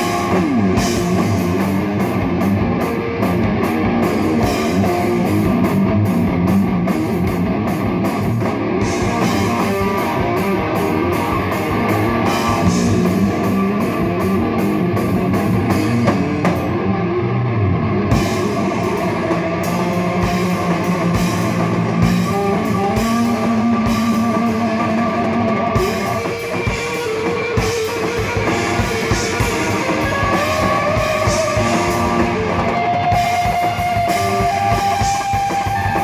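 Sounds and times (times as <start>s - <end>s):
distorted electric guitar: 0.0s - 36.0s
drums: 0.0s - 36.0s.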